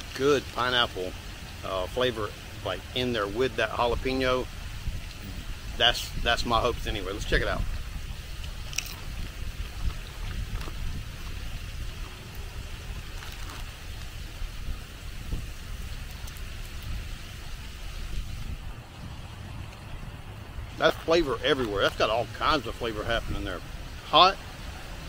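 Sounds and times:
wind buffeting microphone: 0:03.2 - 0:25.0
tortilla chip crunching: 0:08.4 - 0:11.4, 0:12.0 - 0:14.1.

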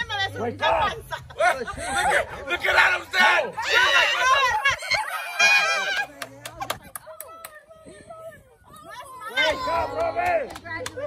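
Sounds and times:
hand claps: 0:05.9 - 0:07.6, 0:09.8 - 0:11.0.

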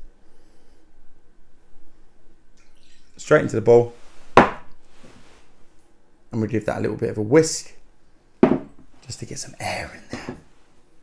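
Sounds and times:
kitchenware knocking on wooden worktop: 0:04.4 - 0:04.6, 0:08.4 - 0:08.8.

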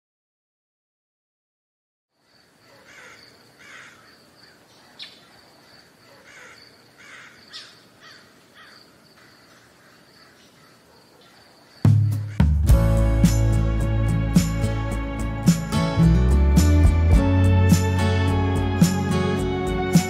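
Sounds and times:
high insect drone: 0:02.2 - 0:12.4
birds calling: 0:02.2 - 0:12.7.

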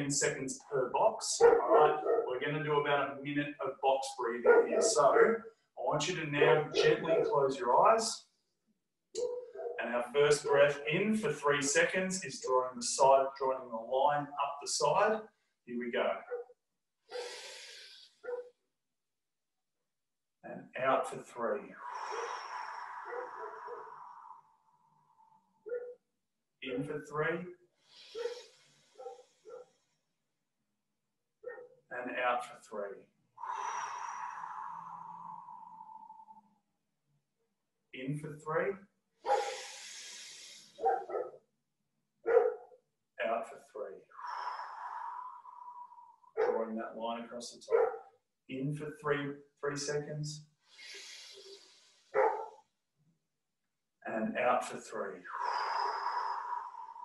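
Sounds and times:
loud voiced sound: 0:06.0 - 0:07.3
man breathing in: 0:21.8 - 0:25.1, 0:33.4 - 0:36.6, 0:39.3 - 0:41.1, 0:44.1 - 0:46.3, 0:50.6 - 0:52.6, 0:55.3 - 0:57.0
man exhaling slowly: 0:33.4 - 0:36.5, 0:50.8 - 0:52.1, 0:55.3 - 0:57.0.

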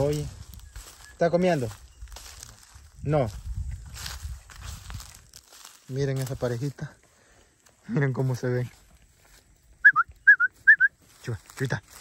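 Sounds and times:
two-note whistles: 0:09.8 - 0:11.0.

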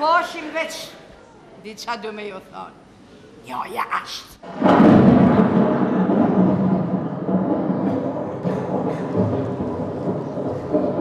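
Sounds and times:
low rumbling noise: 0:04.4 - 0:11.0.

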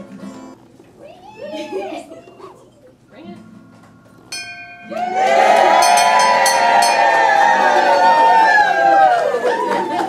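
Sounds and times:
brass bell ringing: 0:04.3 - 0:07.6
crowd cheering and shouting: 0:04.8 - 0:10.0.

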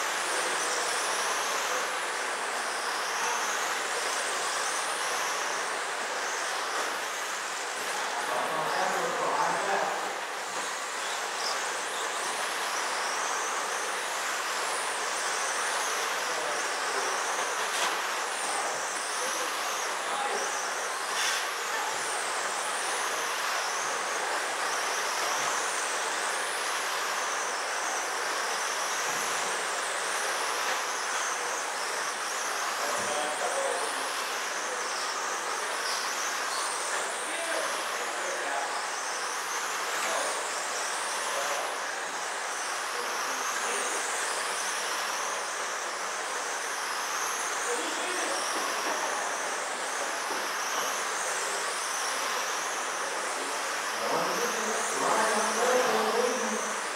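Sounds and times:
electric motors whining: 0:00.0 - 0:56.9
steady hiss: 0:00.0 - 0:56.9.

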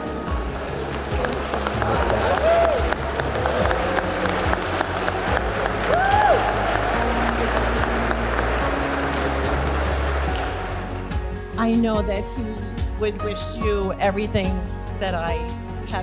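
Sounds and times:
crowd clapping: 0:00.4 - 0:11.3
person whooping: 0:02.0 - 0:02.9, 0:05.9 - 0:06.6.

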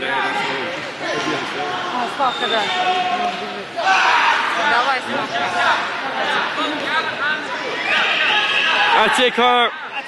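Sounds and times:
people shouting in a hall: 0:01.7 - 0:10.0.

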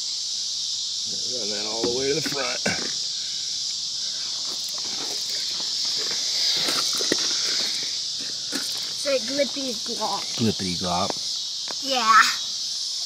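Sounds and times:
insects chirring: 0:00.0 - 0:13.0.

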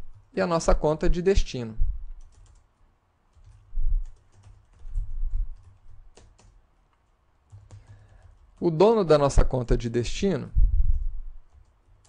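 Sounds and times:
computer keyboard typing: 0:02.2 - 0:02.7, 0:03.3 - 0:06.6, 0:07.4 - 0:08.7, 0:10.9 - 0:12.0.

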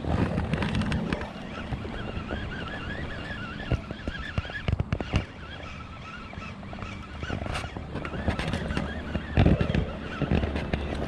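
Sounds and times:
wavering high whine: 0:00.0 - 0:11.0.

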